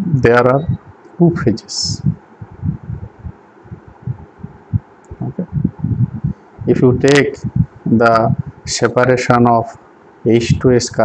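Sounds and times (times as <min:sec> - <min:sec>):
low muffled thumps: 0:00.0 - 0:08.8.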